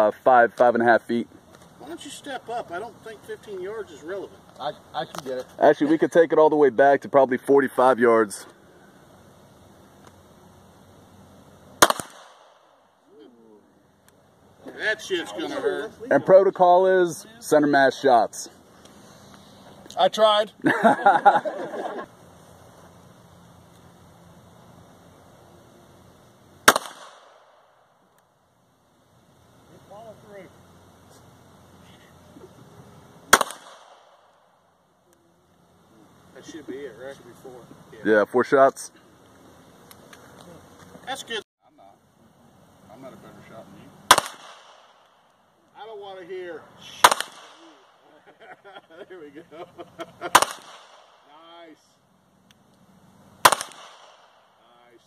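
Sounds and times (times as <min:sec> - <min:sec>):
pistol shot crack: 0:11.8 - 0:12.8, 0:26.6 - 0:27.8, 0:33.3 - 0:34.5, 0:44.1 - 0:45.2, 0:47.0 - 0:48.0, 0:50.2 - 0:51.3, 0:53.4 - 0:54.4.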